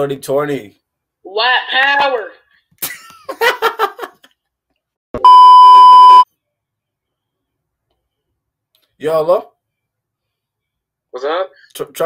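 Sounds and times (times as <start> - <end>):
censor bleep tone: 5.2 - 6.3.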